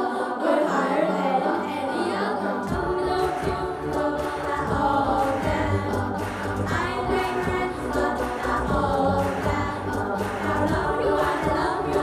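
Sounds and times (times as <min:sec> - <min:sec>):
children singing into microphones: 0:00.0 - 0:12.0.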